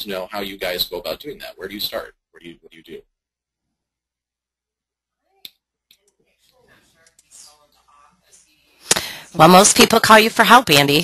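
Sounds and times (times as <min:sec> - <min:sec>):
faint low talking: 0:05.1 - 0:08.9.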